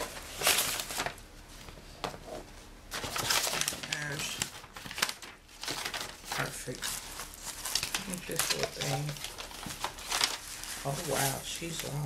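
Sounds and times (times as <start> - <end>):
paper and cardboard crinkling: 0.0 - 12.0.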